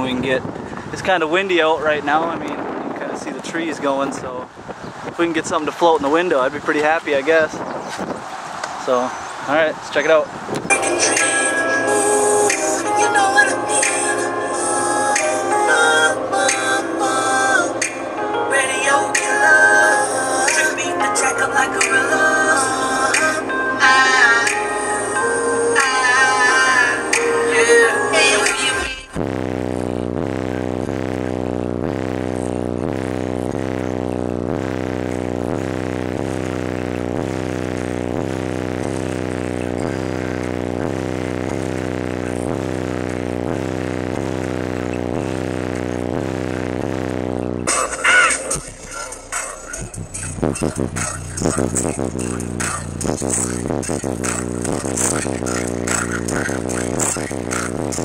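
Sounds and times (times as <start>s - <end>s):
repeating bass pattern: 0.0s - 4.2s, 25.8s - 58.0s
bass-heavy music through subwoofers: 0.0s - 8.2s, 10.5s - 58.0s.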